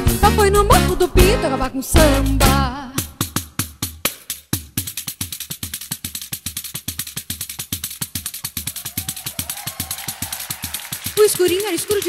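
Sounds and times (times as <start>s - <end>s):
samba percussion: 2.0s - 12.0s.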